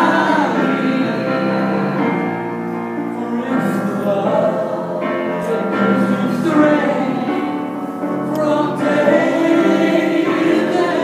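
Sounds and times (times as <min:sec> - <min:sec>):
man singing: 0:00.0 - 0:02.2, 0:03.0 - 0:11.0
grand piano: 0:00.0 - 0:11.0.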